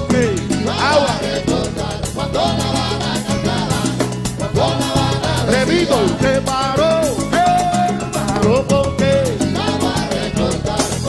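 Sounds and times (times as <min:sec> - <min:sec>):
congas: 0:00.0 - 0:11.0
latin band playing live: 0:00.0 - 0:11.0.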